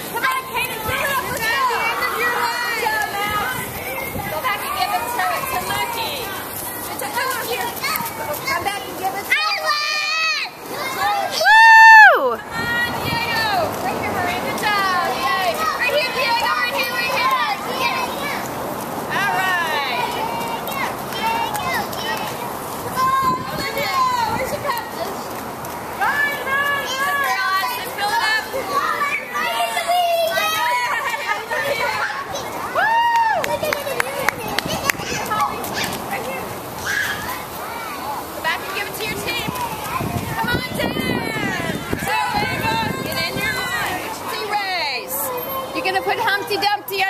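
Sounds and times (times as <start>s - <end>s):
children playing and calling out: 0.0s - 47.0s
high-pitched cheering shouts: 9.4s - 13.6s, 28.6s - 34.0s, 36.8s - 38.1s.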